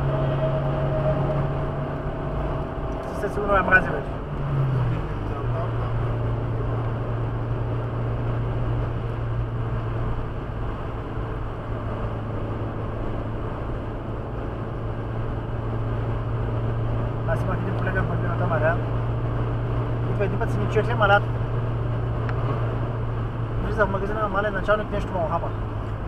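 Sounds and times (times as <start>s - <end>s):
low engine drone: 0.0s - 26.0s
road and tyre rush: 0.0s - 26.0s.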